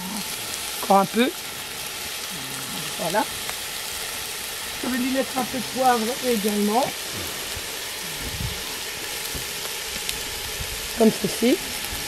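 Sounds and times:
soup sizzling over fire: 0:00.0 - 0:12.0.

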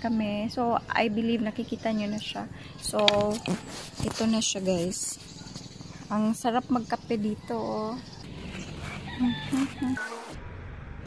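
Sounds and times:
chickens clucking: 0:02.8 - 0:10.3.

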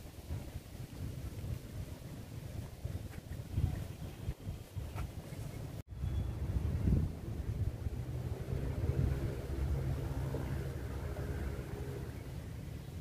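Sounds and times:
wind rumble on microphone: 0:00.0 - 0:13.0
distant vehicle engine hum: 0:05.9 - 0:13.0.

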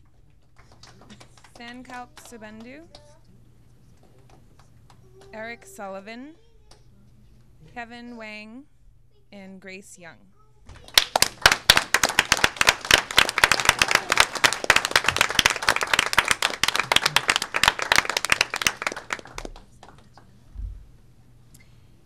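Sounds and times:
small crowd clapping: 0:00.0 - 0:05.5, 0:10.7 - 0:20.4.

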